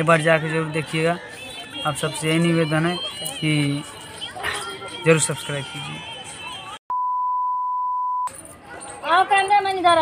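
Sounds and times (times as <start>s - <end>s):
steady test-tone beep: 6.9s - 8.3s.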